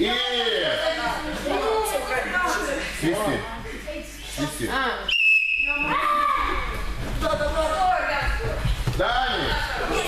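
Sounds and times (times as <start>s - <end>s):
voices chattering in echoing hall: 0.0s - 10.0s
short whistle blast: 5.1s - 5.9s.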